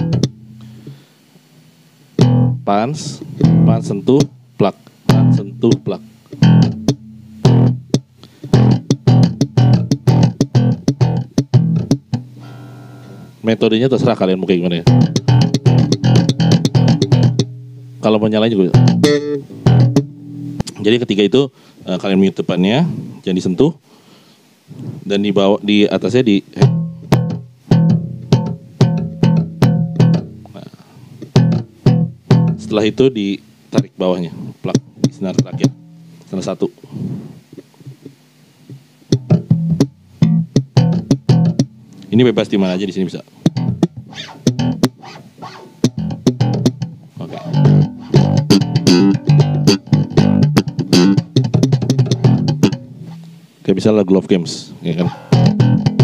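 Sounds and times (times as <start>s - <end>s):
slap bass guitar: 0.0s - 1.0s, 2.2s - 21.0s, 26.0s - 36.6s, 37.6s - 53.5s, 54.9s - 56.0s.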